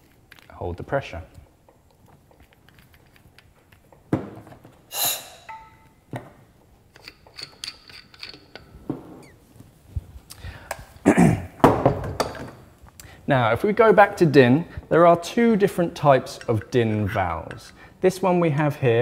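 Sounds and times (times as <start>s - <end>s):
metal and plastic knocks and clunks: 11.6s - 12.6s.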